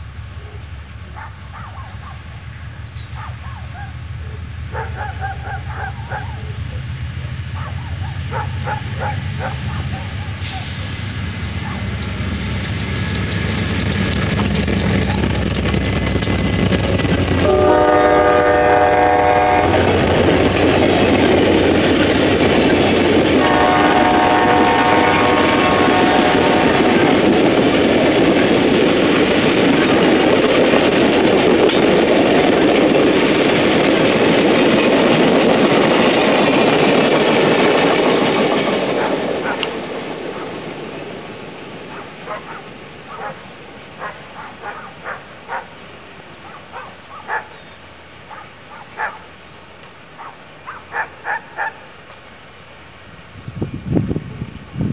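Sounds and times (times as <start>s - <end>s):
train cars clattering past: 0.0s - 53.2s
locomotive engine rumble: 0.0s - 54.9s
train air horn: 17.4s - 20.0s, 23.4s - 27.1s.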